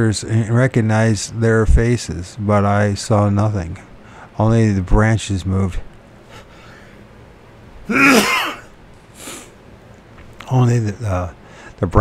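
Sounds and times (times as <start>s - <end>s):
man coughing: 7.9s - 8.7s.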